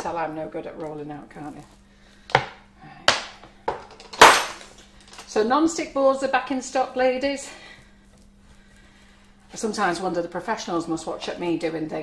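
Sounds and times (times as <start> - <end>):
rolling pin knocking on board: 2.3 - 3.8.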